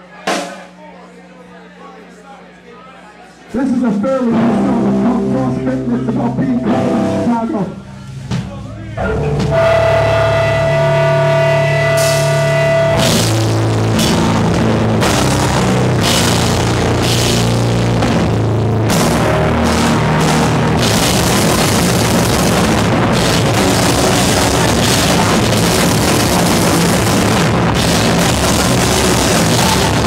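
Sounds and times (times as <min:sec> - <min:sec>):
drums: 0:00.0 - 0:01.4, 0:03.5 - 0:30.0
distorted guitar and bass: 0:03.6 - 0:30.0.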